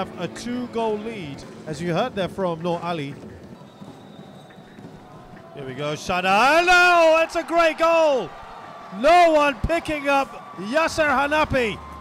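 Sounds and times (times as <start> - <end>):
stadium crowd haze: 0.0 - 12.0.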